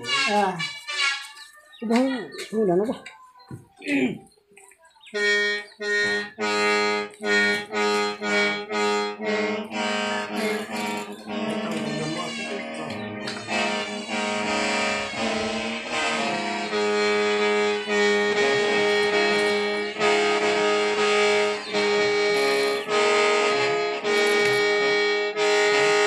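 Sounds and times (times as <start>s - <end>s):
mouth organ playing: 0.0s - 2.7s, 5.1s - 26.0s.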